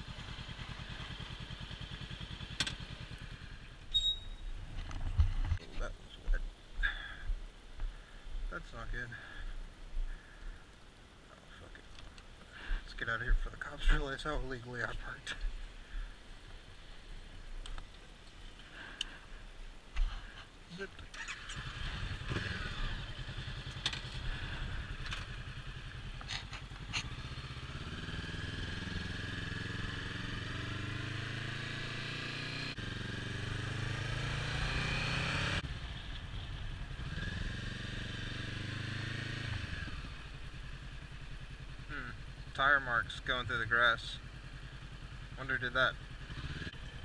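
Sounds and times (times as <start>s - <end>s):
motorcycle engine accelerating: 0.0s - 4.3s, 21.1s - 47.0s.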